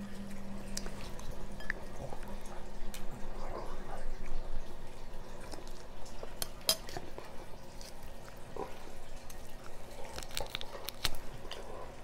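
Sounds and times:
chewing: 0.0 - 12.0.

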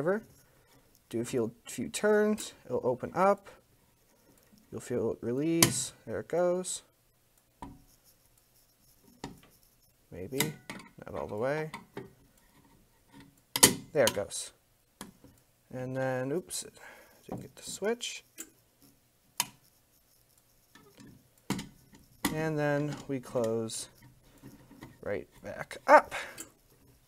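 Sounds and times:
screwdriver scraping: 7.8 - 11.3, 17.2 - 27.0.

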